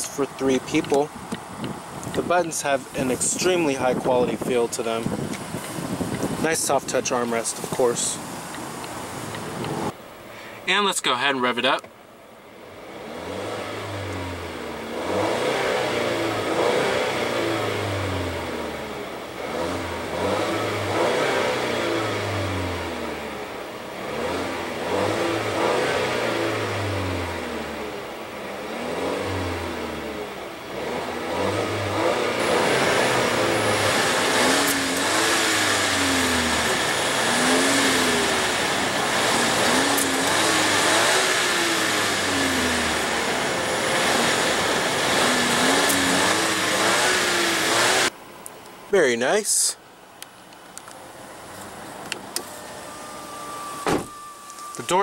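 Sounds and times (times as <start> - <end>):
car engine revving: 12.5 - 48.4, 50.7 - 55.0.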